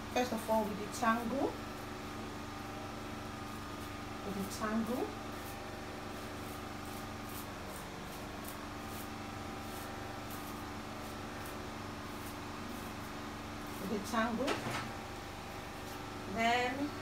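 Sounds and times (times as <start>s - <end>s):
steady low hum: 0.0s - 17.0s
hairbrush swishing through hair: 3.4s - 14.1s.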